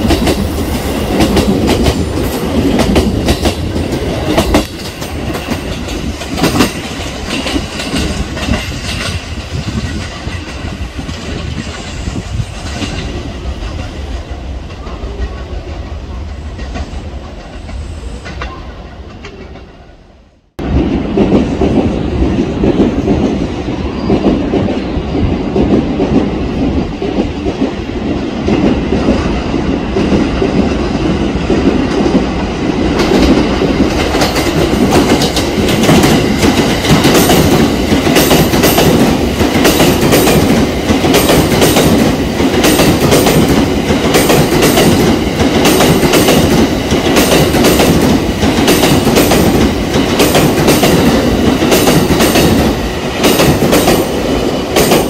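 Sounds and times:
train rolling rumble: 0:00.0 - 0:55.0.

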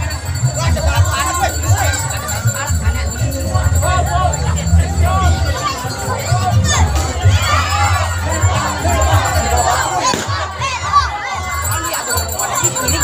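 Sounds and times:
crowd shouting and cheering: 0:00.0 - 0:13.0.

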